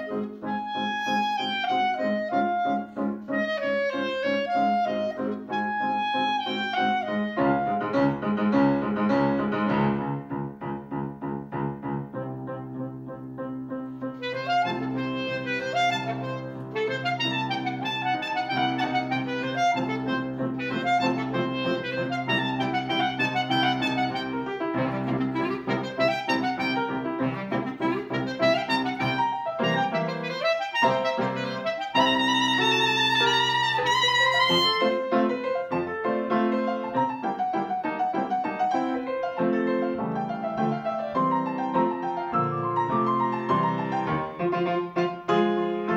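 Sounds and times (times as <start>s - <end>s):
clarinet playing a melody: 0.0s - 10.3s, 13.4s - 45.9s
grand piano accompaniment: 0.0s - 45.9s.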